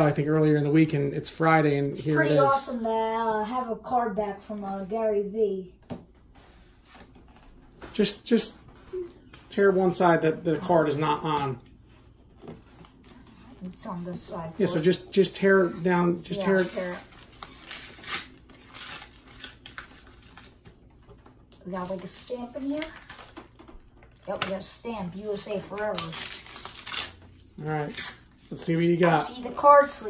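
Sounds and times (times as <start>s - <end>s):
paper envelope tearing: 16.4s - 20.6s, 25.2s - 28.3s.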